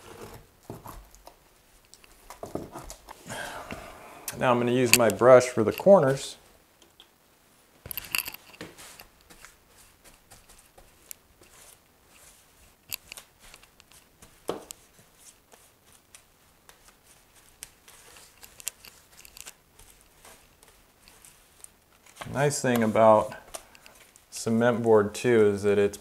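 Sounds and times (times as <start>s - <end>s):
scratchy brush strokes: 8.6s - 25.8s.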